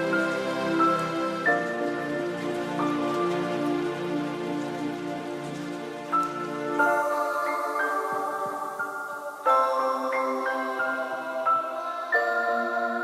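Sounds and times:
soft hiss: 0:00.0 - 0:13.0.

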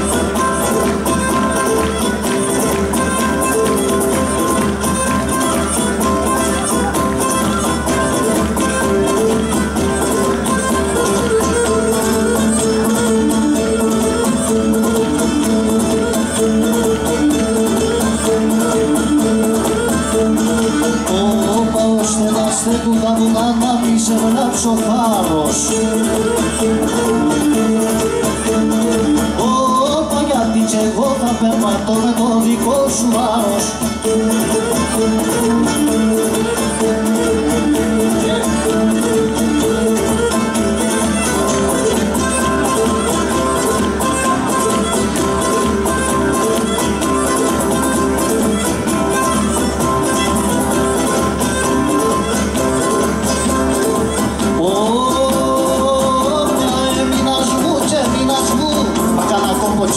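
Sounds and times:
drums: 0:00.0 - 0:59.9
fiddle melody: 0:00.0 - 0:59.9
lute strumming: 0:00.0 - 0:59.9
string band playing dance tune: 0:00.0 - 0:59.9.

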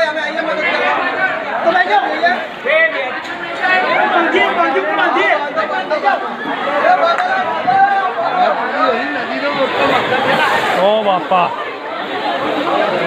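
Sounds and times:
overlapping chatter of voices: 0:00.0 - 0:13.0.

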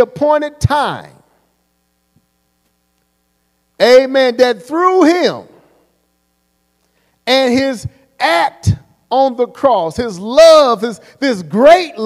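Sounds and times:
man speaking into a microphone: 0:00.0 - 0:01.4, 0:03.8 - 0:05.8, 0:07.2 - 0:12.0.

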